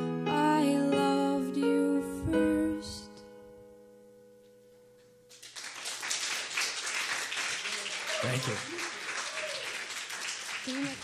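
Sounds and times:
audience applause: 0:05.3 - 0:11.0.

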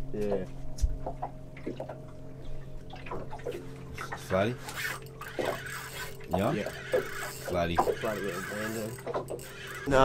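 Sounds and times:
steady low hum: 0:00.0 - 0:10.0
water lapping against boat hull: 0:01.0 - 0:09.9.

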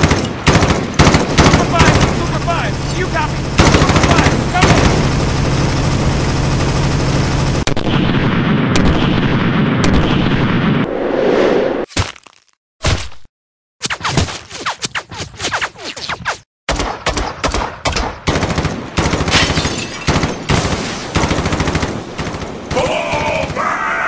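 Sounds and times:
rapid automatic gunfire: 0:00.0 - 0:10.5, 0:16.7 - 0:23.6.

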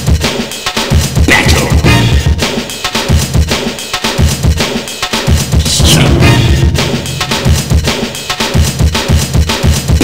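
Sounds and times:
breakbeat drum pattern: 0:00.0 - 0:10.0.

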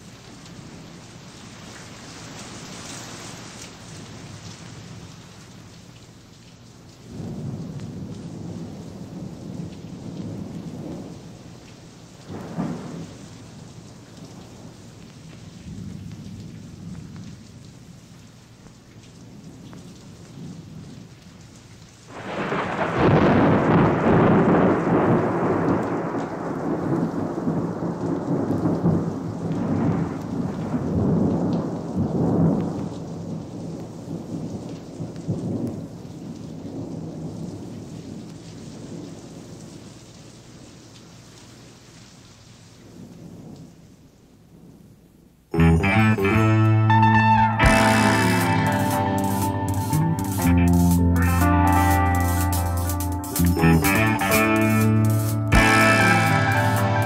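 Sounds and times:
steady rain: 0:00.0 - 0:57.0
rolling thunder: 0:07.1 - 0:11.6, 0:12.3 - 0:14.8, 0:22.1 - 0:39.6
loud thunderclap: 0:12.3 - 0:13.3, 0:22.1 - 0:35.9.

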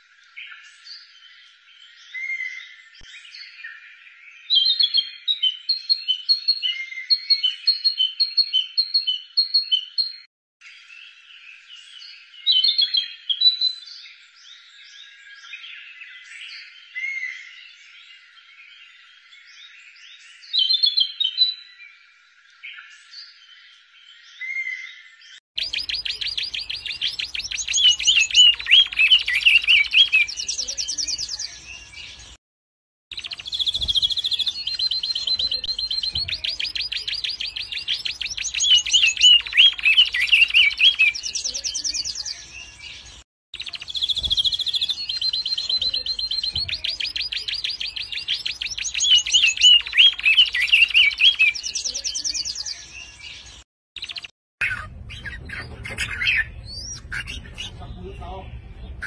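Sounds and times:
bird song trills and chirps: 0:00.0 - 0:32.4, 0:33.1 - 0:59.0.

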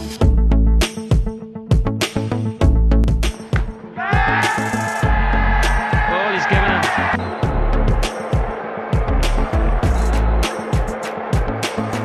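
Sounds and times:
music with heavy bass and drums: 0:04.2 - 0:12.0.

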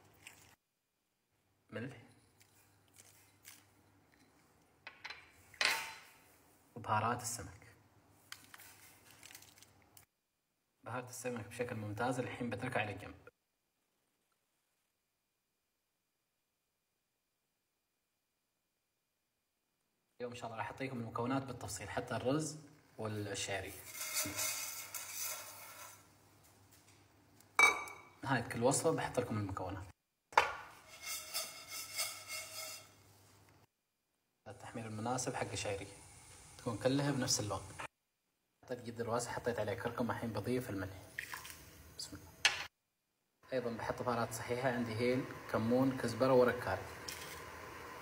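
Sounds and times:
vermicelli scraping against pan: 0:23.7 - 0:26.1, 0:30.7 - 0:33.2.

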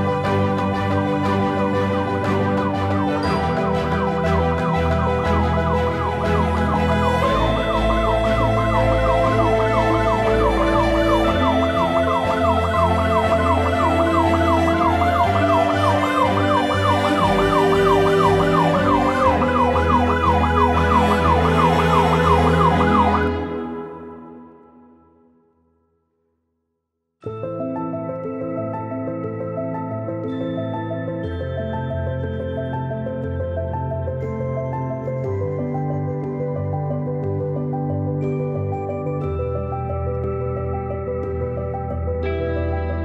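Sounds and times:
film score low chords: 0:00.0 - 0:24.9
siren yelping: 0:02.2 - 0:24.4.

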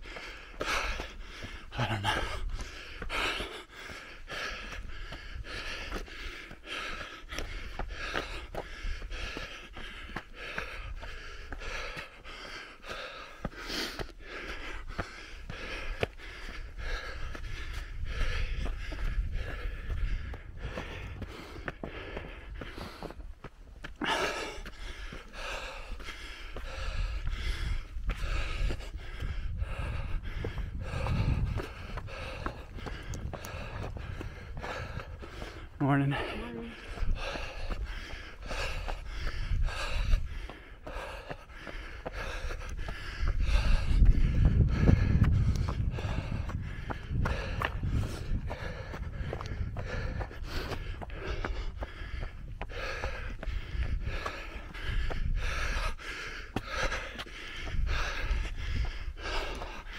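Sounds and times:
heavy breathing: 0:00.0 - 0:59.9
running footsteps on dirt trail: 0:00.0 - 0:59.9.

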